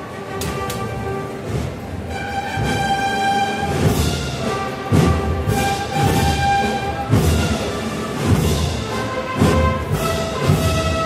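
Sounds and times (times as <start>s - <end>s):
brass and woodwinds sustained notes: 0.0s - 11.0s.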